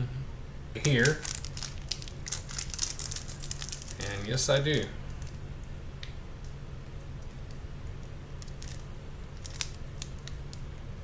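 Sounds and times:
foil wrapper crinkling: 0:00.8 - 0:04.4, 0:08.4 - 0:10.6.

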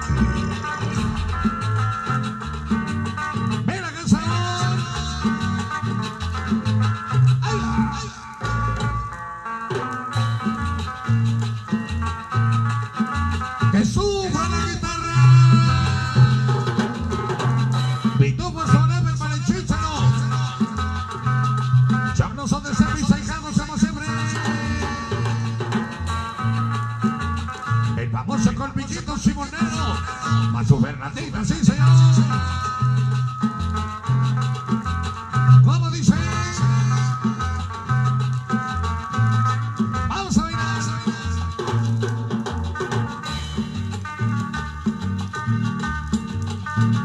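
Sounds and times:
bass line: 0:00.0 - 0:47.0
drums: 0:00.0 - 0:47.0
electric guitar melody: 0:00.0 - 0:47.0
man shouting: 0:07.4 - 0:08.4, 0:13.8 - 0:16.6, 0:18.2 - 0:20.8, 0:28.1 - 0:32.6, 0:40.1 - 0:41.6.

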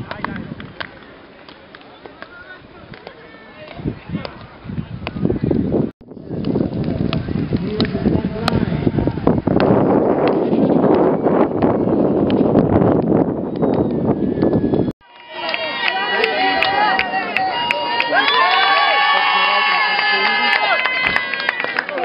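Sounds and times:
dense outdoor noise: 0:00.0 - 0:22.0
spectators calling and shouting: 0:14.1 - 0:22.0.

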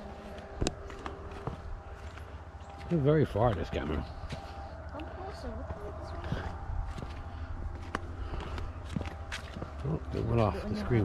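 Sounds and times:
footsteps on stone path: 0:00.0 - 0:11.0
steady low rumble: 0:00.0 - 0:11.0.

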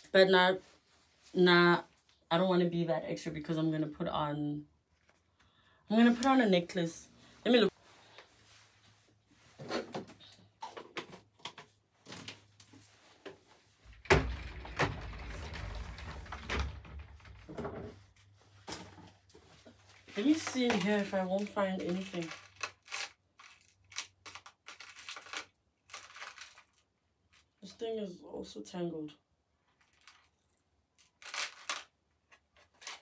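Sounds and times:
drawers knocking and clattering: 0:13.9 - 0:18.0
plastic container and jewellery rustling: 0:13.9 - 0:27.6, 0:29.6 - 0:33.0.

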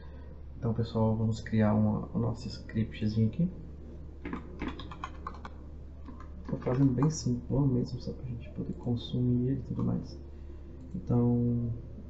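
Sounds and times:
computer keyboard typing: 0:04.2 - 0:07.3.

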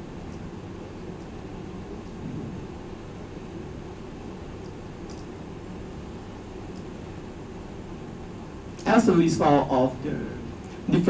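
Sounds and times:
room noise rumble and hiss: 0:00.0 - 0:11.0.

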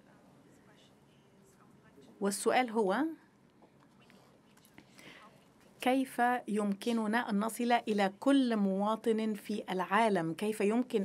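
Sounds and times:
soft breathy sound: 0:03.6 - 0:05.6.

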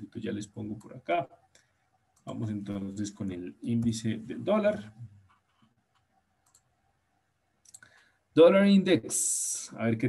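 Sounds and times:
computer keyboard and mouse clicks: 0:05.3 - 0:06.7.

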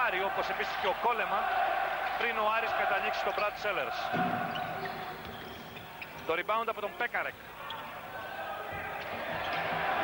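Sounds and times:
basketball game sounds: 0:00.0 - 0:06.3, 0:08.6 - 0:10.0.

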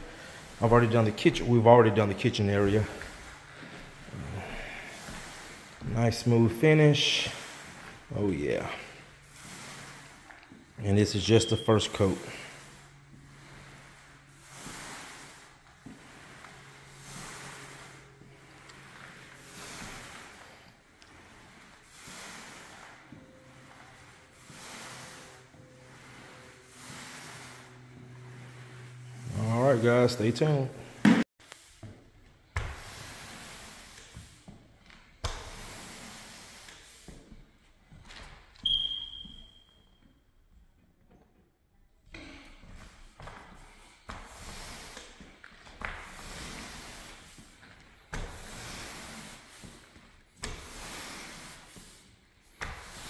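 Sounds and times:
applicator swishing on floor: 0:00.0 - 0:30.1.

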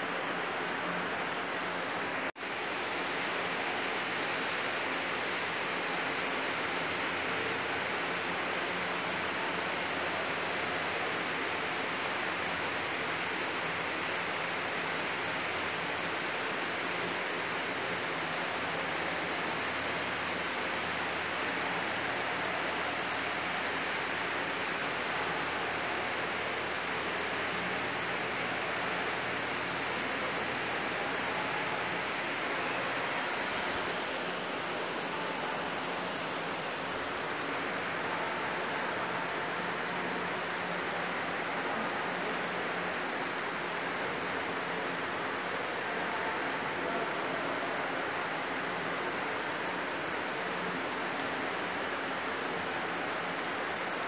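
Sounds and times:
steady hiss: 0:00.0 - 0:54.0.

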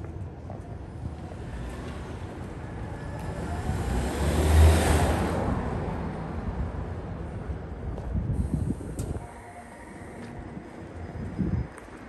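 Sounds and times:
car driving past: 0:01.5 - 0:06.7.

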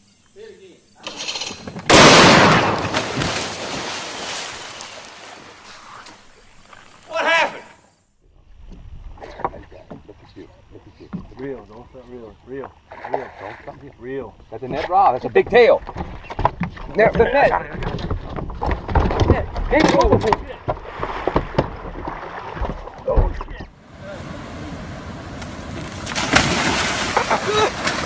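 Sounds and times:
water noise: 0:02.0 - 0:28.0.

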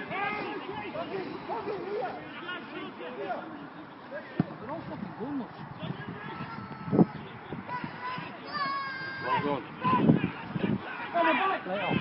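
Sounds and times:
distant voices calling out: 0:00.0 - 0:12.0.

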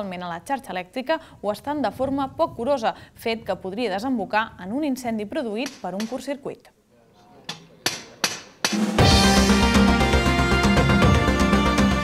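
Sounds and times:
sharp percussive hits: 0:07.5 - 0:11.5
music: 0:08.7 - 0:12.0.

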